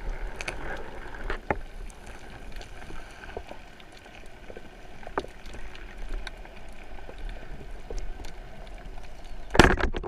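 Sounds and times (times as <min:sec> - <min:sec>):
faint clicks: 0:00.3 - 0:09.6.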